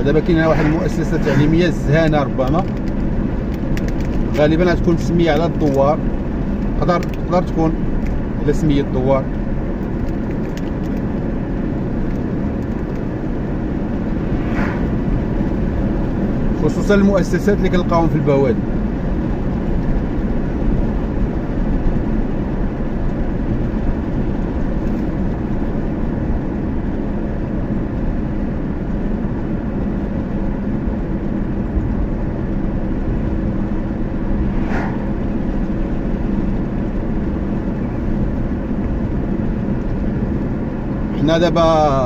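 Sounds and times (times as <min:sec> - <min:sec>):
car road and engine rumble: 0:00.0 - 0:42.0
brief swish: 0:00.4 - 0:01.5, 0:14.2 - 0:15.1, 0:34.3 - 0:35.5.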